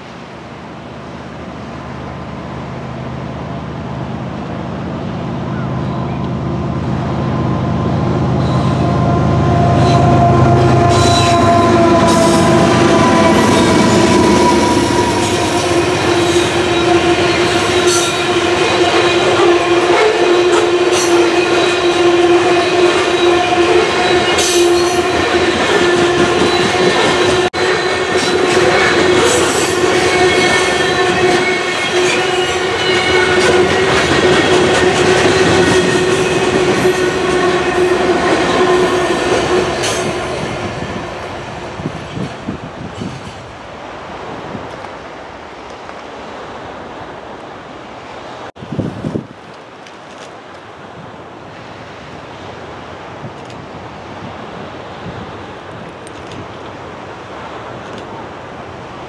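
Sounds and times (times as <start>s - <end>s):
freight train rolling past: 0.0s - 59.0s
high wheel squeal: 8.4s - 25.2s.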